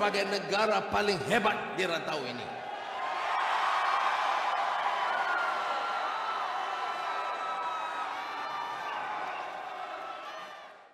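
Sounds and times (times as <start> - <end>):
large crowd cheering: 2.5 - 10.9.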